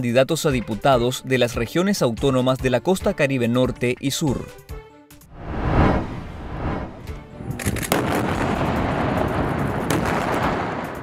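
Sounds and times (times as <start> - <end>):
dense rumbling: 5.3 - 8.7
explosion blast: 5.4 - 11.0
sharp cracks: 7.5 - 11.0.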